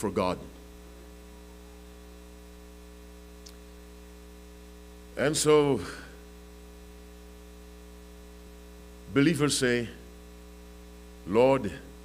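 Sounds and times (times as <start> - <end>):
electrical mains hum: 0.0 - 12.0
faint static hiss: 0.0 - 12.0.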